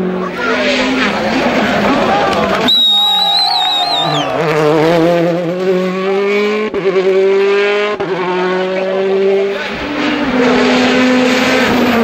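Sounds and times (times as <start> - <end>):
car engine accelerating hard: 0.0 - 12.0.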